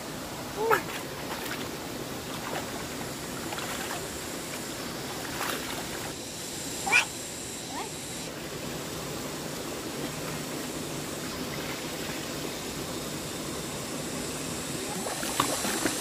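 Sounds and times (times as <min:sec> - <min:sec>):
water running over concrete: 0:14.6 - 0:16.0.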